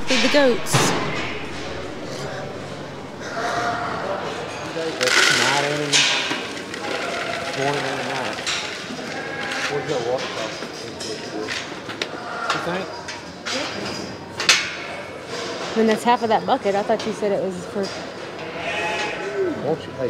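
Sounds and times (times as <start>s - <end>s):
indistinct voices: 0.0s - 20.0s
clanks of buckets and steel panels: 5.0s - 11.8s.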